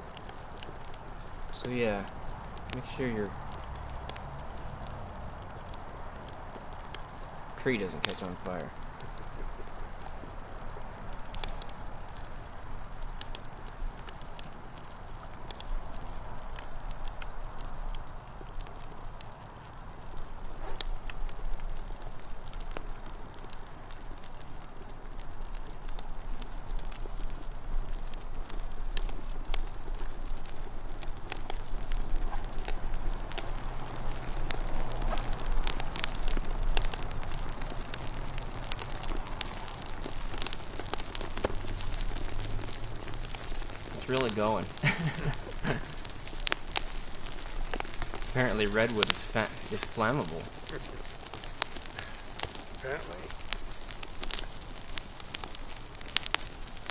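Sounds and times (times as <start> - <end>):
wood crackling and popping in fire: 0.0 - 56.9.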